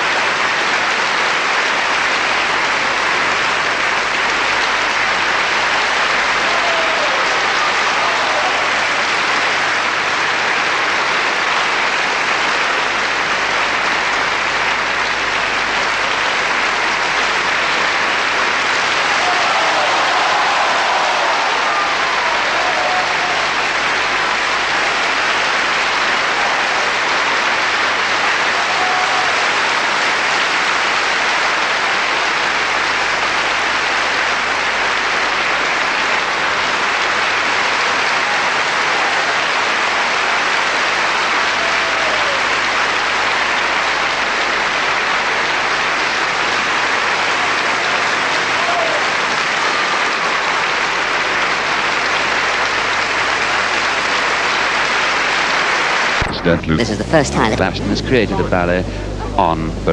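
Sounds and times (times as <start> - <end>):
audience applauding: 0.0 - 59.9.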